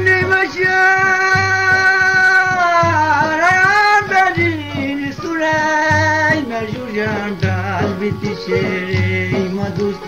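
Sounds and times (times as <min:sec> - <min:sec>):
steady drum beat: 0:00.0 - 0:10.0.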